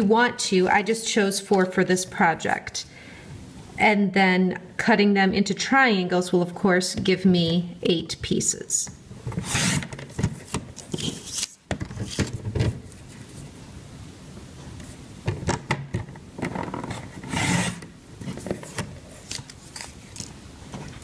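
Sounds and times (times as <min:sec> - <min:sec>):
paper sliding and rustling: 0:09.3 - 0:13.5
paper trimmer blade scraping: 0:17.2 - 0:17.8.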